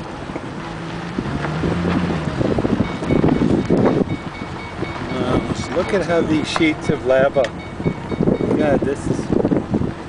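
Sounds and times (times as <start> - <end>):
wind buffeting microphone: 0.1 - 10.0.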